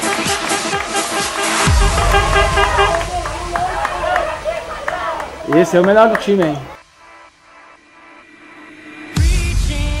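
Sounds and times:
voices shouting and calling: 1.7 - 6.8.

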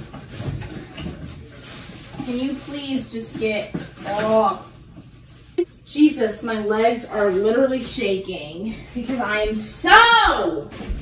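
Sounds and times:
plastic trash bag rustling: 0.0 - 8.3.

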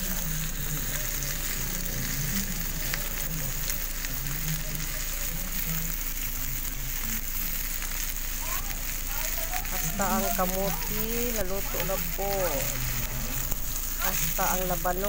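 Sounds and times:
food sizzling in oil: 0.0 - 15.0.

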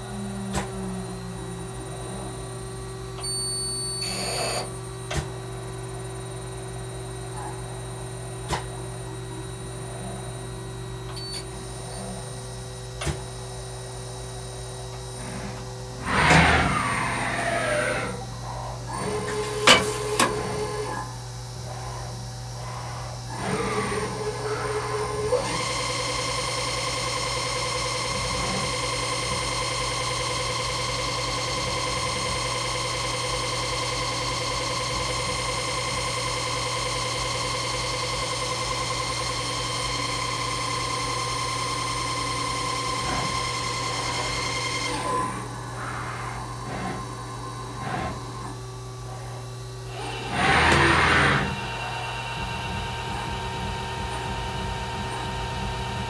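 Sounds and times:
motor whines sweeping in pitch: 13.9 - 56.0
lathe humming: 28.7 - 56.0.

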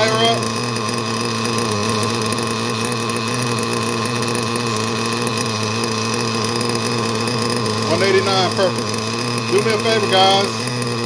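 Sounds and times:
nitro engine idling: 0.0 - 11.0.

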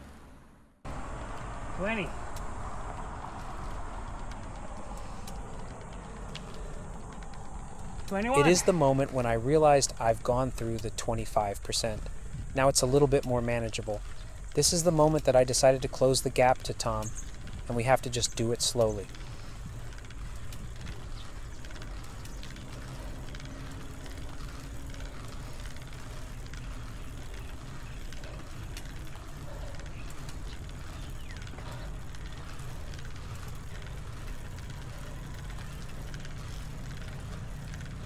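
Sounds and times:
bicycle tyre and road noise: 0.0 - 38.0
wind rumble on microphone: 0.9 - 10.0, 12.0 - 12.8, 17.0 - 38.0.

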